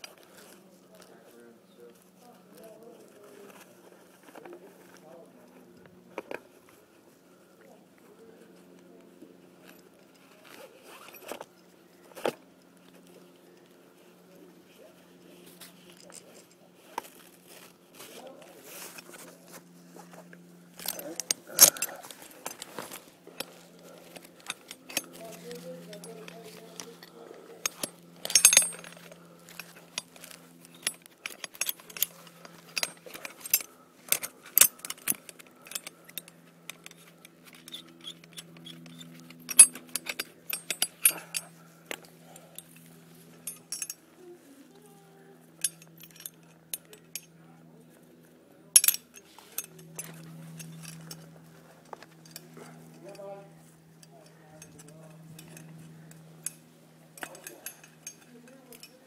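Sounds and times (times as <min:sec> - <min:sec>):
metal carabiners clinking: 0:09.6 - 0:11.5, 0:15.6 - 0:48.1, 0:48.7 - 0:59.0.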